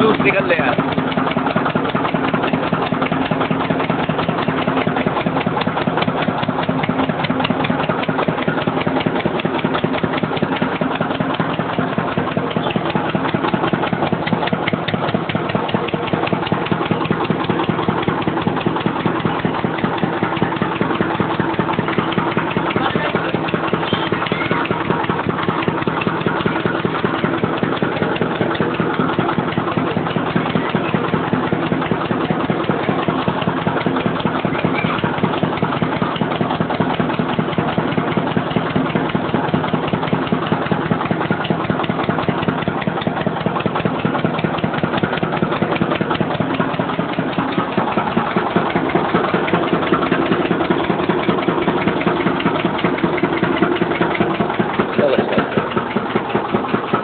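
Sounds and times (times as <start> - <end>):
small engine running: 0.0 - 57.0.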